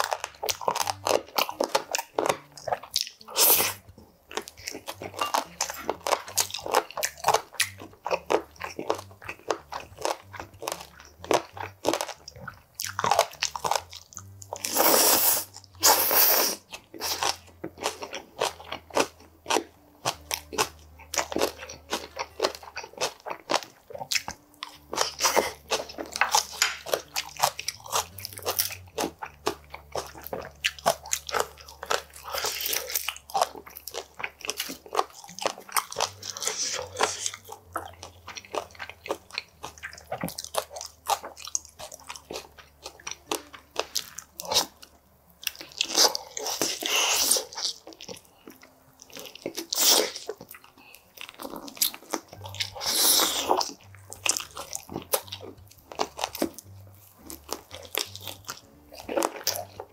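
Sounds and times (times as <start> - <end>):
crunchy bites: 0.0 - 2.5
chewing and crunching: 0.0 - 59.9.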